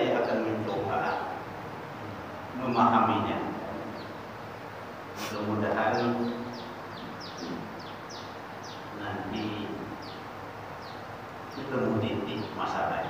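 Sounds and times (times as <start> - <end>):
bird chirping: 0.0 - 1.4, 2.3 - 13.0
faint man's voice: 5.2 - 6.6, 11.6 - 13.0.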